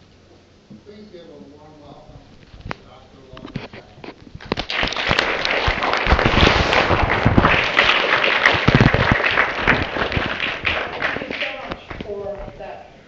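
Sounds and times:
audience applauding: 0:04.4 - 0:12.5.

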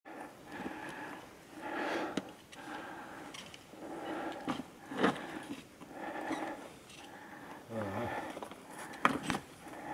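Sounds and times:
person breathing hard: 0:00.1 - 0:09.9.

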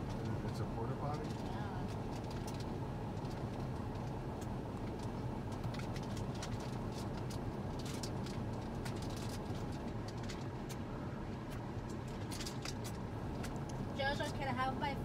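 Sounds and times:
low rumble inside car cabin: 0:00.0 - 0:15.0.

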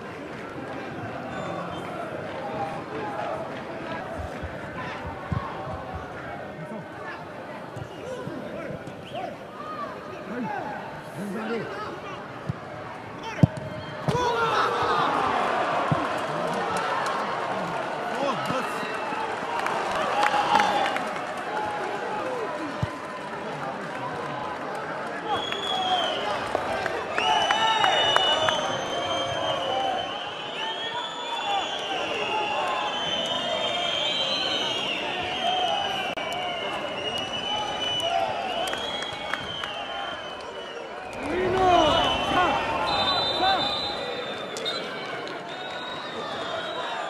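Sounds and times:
stadium crowd noise: 0:00.0 - 0:47.0
crowd shouts: 0:13.1 - 0:47.0.

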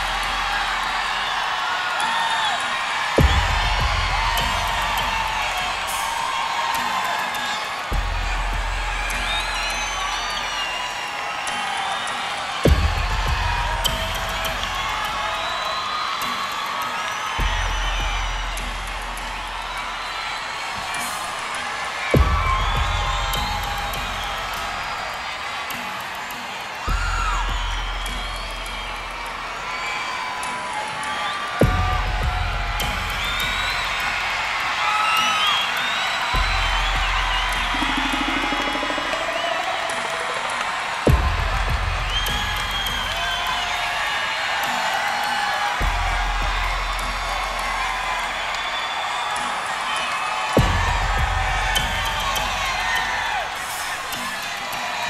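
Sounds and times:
crowd cheering and screaming: 0:00.0 - 0:55.0
deep bass backing track: 0:03.2 - 0:06.0, 0:07.9 - 0:10.2, 0:12.7 - 0:15.3, 0:22.2 - 0:24.8, 0:31.6 - 0:34.4, 0:36.4 - 0:39.2, 0:41.1 - 0:43.6, 0:50.6 - 0:53.2.

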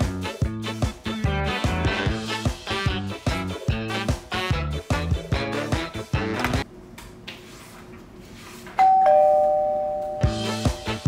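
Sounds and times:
two-note doorbell chime: 0:08.8 - 0:10.9.

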